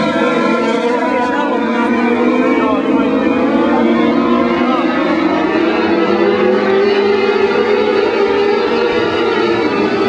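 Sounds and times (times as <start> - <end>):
race car engines running hard: 0.0 - 10.0.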